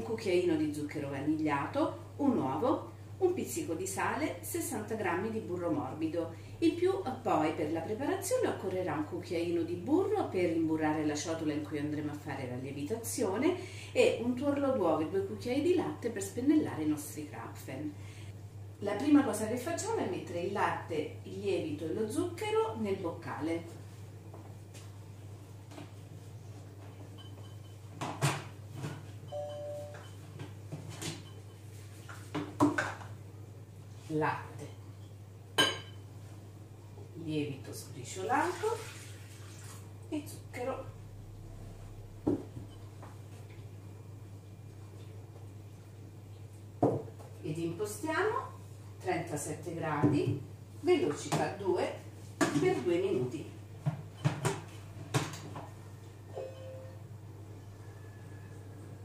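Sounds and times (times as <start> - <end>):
short electronic beep: 29.3 - 30.2, 56.4 - 57.0
short steady tone: 29.3 - 30.2, 56.4 - 57.0.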